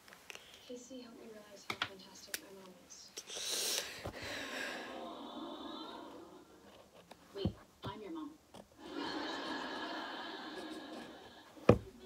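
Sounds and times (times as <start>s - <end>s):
sitcom audio from a tv: 0.6s - 12.0s.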